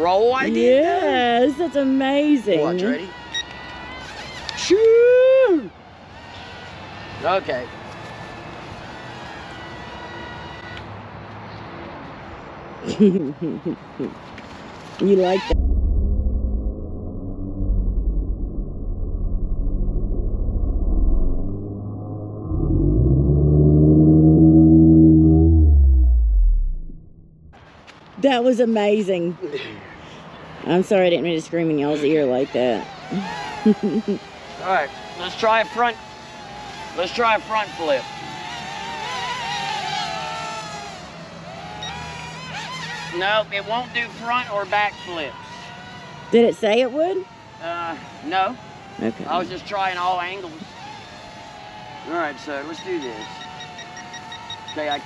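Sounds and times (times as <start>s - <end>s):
toy drone propellers whining: 1.0s - 5.0s, 32.0s - 55.0s
low fluttering rumble: 15.4s - 27.6s
slowed-down man's scream: 38.0s - 42.2s.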